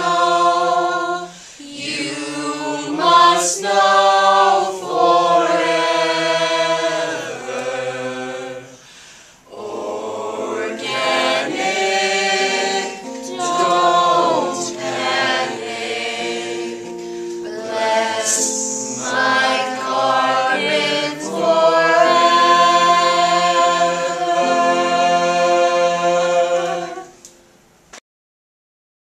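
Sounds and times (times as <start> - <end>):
group singing in harmony: 0.0 - 27.4.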